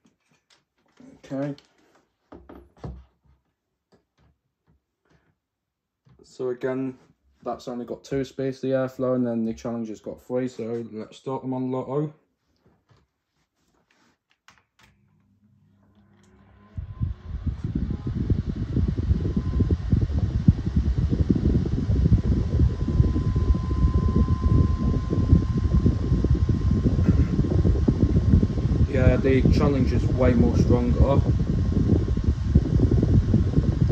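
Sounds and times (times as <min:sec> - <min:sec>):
desk fans running: 0:15.4 - 0:33.9.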